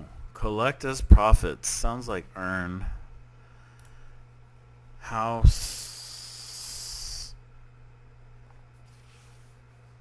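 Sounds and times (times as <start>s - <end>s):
man speaking: 0.0s - 3.0s, 5.0s - 6.0s
low electrical hum: 0.0s - 10.0s.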